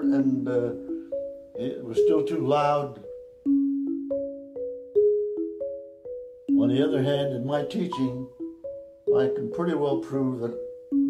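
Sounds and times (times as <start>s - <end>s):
marimba two-note chords: 0.0s - 11.0s.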